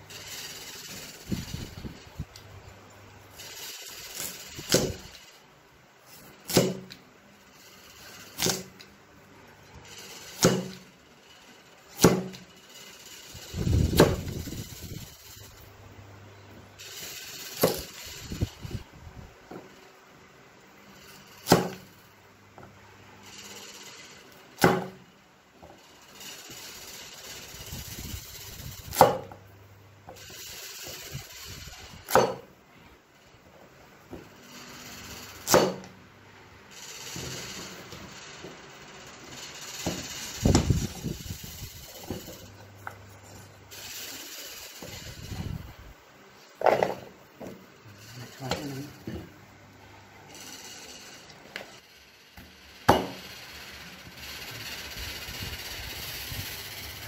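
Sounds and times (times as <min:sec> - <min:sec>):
cleaver chopping on wooden block: 0:32.1 - 0:32.4.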